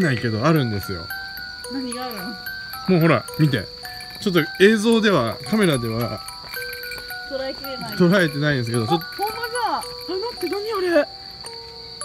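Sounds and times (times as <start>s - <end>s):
night insects droning: 0.0s - 12.0s.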